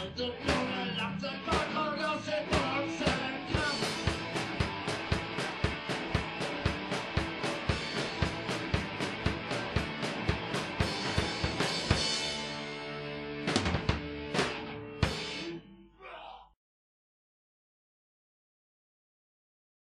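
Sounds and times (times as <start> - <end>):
fast drum kit beat: 0.0 - 12.8, 13.4 - 15.4
punk rock band playing: 0.0 - 15.7.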